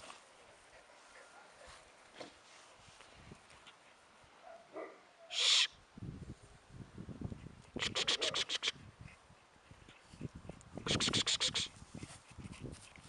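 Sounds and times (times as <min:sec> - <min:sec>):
low scuffs on dry grass: 0:00.0 - 0:03.8.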